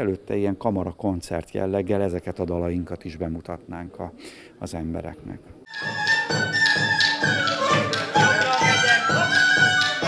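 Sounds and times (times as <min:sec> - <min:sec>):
flute melody: 0:05.7 - 0:10.0
steady drum beat: 0:05.7 - 0:10.0.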